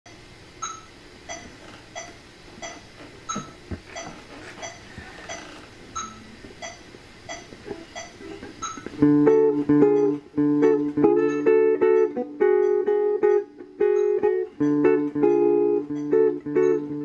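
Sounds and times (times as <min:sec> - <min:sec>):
metronome clicking: 0:00.6 - 0:05.4, 0:06.0 - 0:17.0.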